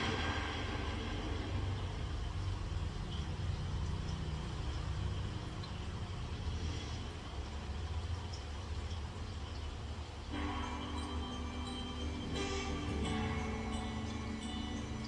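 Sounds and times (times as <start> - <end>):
low rumble: 0.0 - 3.8.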